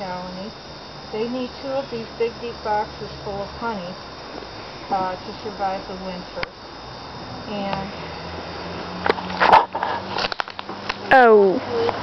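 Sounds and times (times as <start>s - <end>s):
bees humming: 0.0s - 12.0s.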